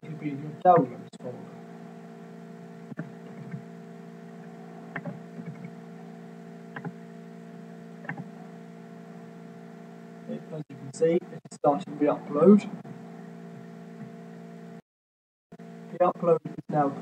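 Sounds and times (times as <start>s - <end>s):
steady electrical hum: 0.0s - 14.8s, 15.6s - 17.0s.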